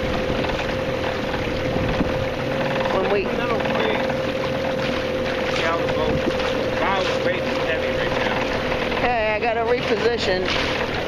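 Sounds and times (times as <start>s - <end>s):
wind on microphone: 0.0s - 2.5s
boat motor whining: 0.0s - 11.0s.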